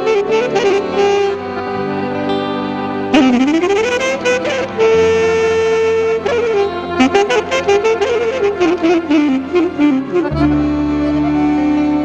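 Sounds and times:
folk band playing: 0.0 - 12.0
wind instrument lead: 0.0 - 12.0.

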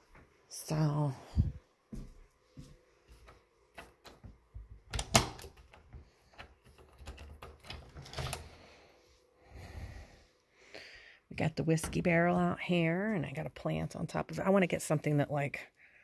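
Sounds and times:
door latch clicking: 4.9 - 5.7
door knob turning: 4.9 - 8.5.

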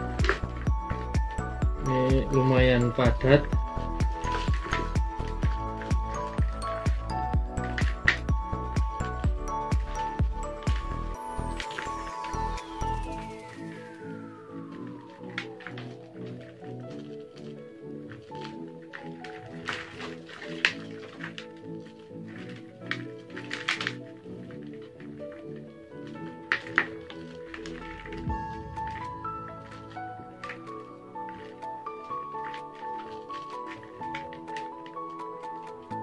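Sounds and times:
music with steady beat: 0.0 - 16.3, 27.6 - 32.9
hands loosening soil: 0.0 - 28.3.

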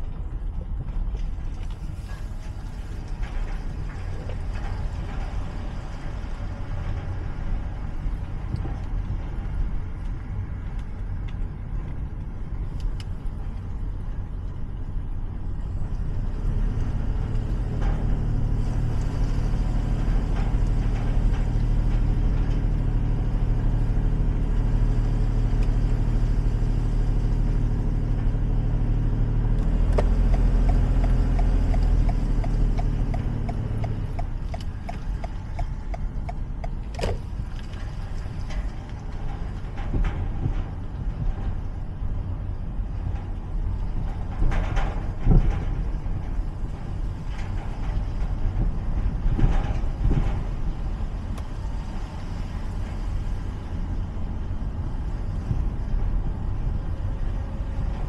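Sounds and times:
vehicle engine rumbling: 0.0 - 58.0.

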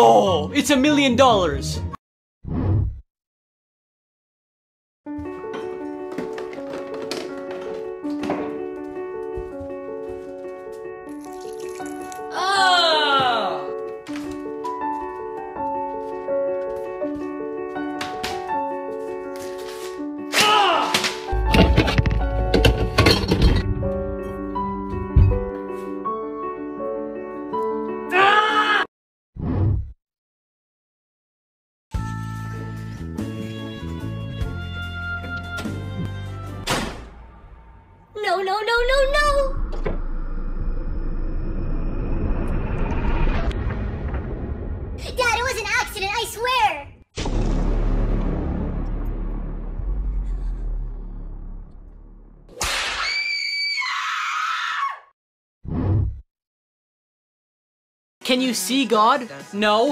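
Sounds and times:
background music of held notes: 5.1 - 28.1
person screaming high-pitched: 12.3 - 13.7, 20.4 - 21.0, 28.1 - 28.9.

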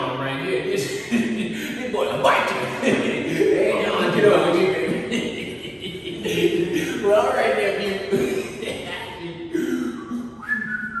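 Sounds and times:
person whistling a tune: 10.4 - 11.0.

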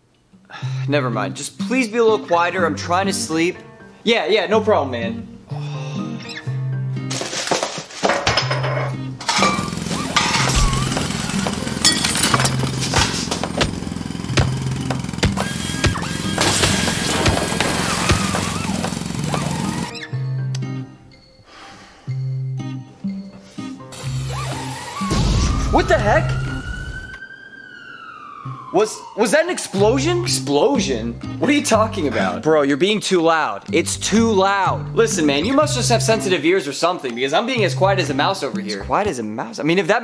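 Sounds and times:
gentle music with bass line: 0.7 - 7.1, 19.6 - 21.3, 22.1 - 24.6, 29.8 - 32.7, 33.7 - 36.5, 37.4 - 39.3
kitchen clatter bangs and crashes: 7.1 - 14.8, 15.8 - 19.9.

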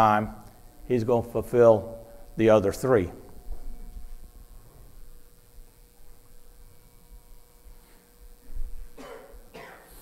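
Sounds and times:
faint steady hum: 0.0 - 10.0
man coughing: 9.0 - 10.0.

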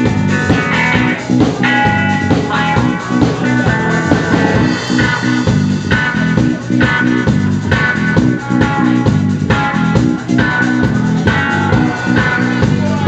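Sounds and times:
electric guitar riff: 0.0 - 12.7
bass: 0.0 - 13.0
drums: 0.0 - 13.0.

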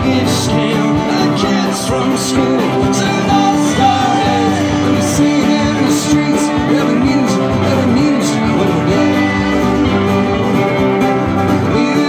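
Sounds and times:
bass guitar: 0.0 - 12.0
drums: 0.0 - 12.0
electric guitar: 0.0 - 12.0
strummed acoustic guitar: 0.0 - 12.0.

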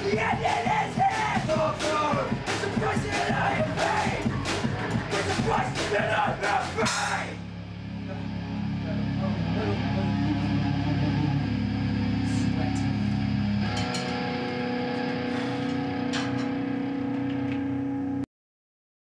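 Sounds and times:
electric guitars and bass chord: 0.0 - 18.2
steady amplifier tone: 7.3 - 18.2.

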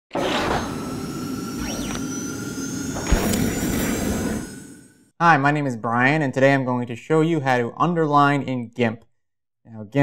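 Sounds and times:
sweeping tone: 0.4 - 5.1.

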